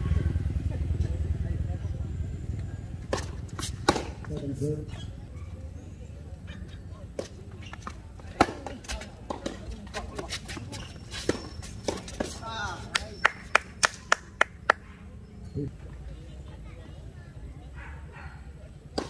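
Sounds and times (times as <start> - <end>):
tennis ball bounces: 3.0 - 4.6, 6.6 - 14.8
tennis racket strikes: 3.1 - 4.4.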